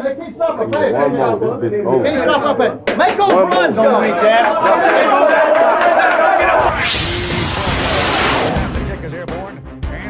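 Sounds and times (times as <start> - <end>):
whoosh sound effect: 6.4 - 9.0.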